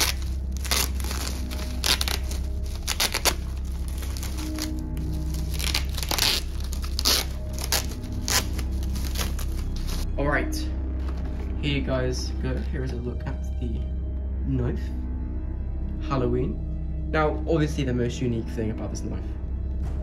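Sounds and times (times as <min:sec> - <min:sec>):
bubble wrap crinkling and tearing: 0:00.0 - 0:10.1
background music: 0:00.0 - 0:20.0.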